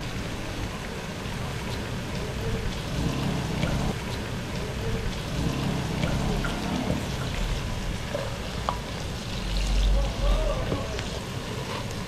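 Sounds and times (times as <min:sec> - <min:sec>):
oil popping: 0:02.1 - 0:11.2.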